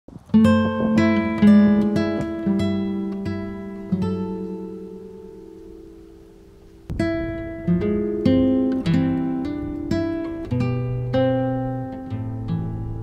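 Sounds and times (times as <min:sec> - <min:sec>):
acoustic guitar playing: 0:00.1 - 0:13.0.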